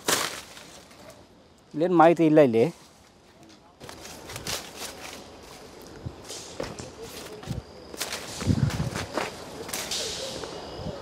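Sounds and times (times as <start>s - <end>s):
leaves swishing against clothing: 0.0s - 1.2s, 2.7s - 10.6s
twigs snapping: 0.0s - 1.2s
footsteps through tall weeds: 3.8s - 9.9s.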